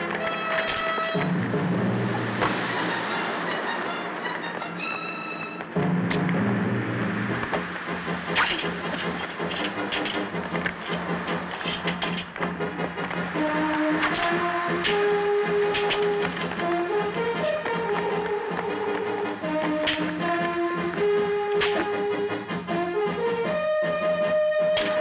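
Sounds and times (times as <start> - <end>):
orchestral accented hits: 0.0 - 25.0
orchestral music: 0.0 - 25.0.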